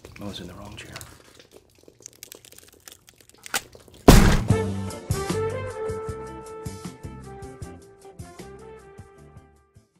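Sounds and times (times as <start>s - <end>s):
jazzy theme music with horns: 4.1s - 9.6s.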